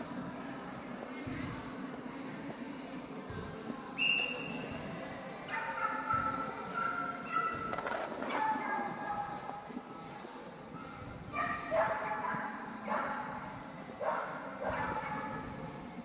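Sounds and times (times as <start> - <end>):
dog barking in high-pitched yips: 5.5 - 7.7, 8.3 - 9.4, 11.3 - 13.2, 14.0 - 15.4.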